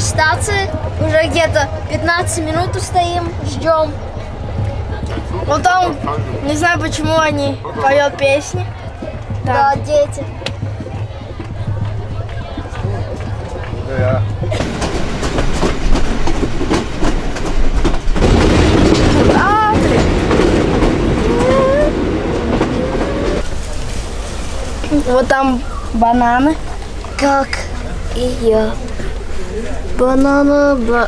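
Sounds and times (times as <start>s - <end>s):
voices: 0.0s - 15.1s, 18.4s - 31.0s
train rumbling on track: 0.0s - 31.0s
wheels clicking over rail joints: 0.0s - 31.0s.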